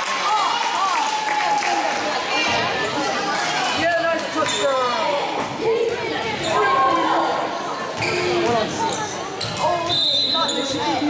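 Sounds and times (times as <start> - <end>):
people talking in a gymnasium: 0.0 - 11.0.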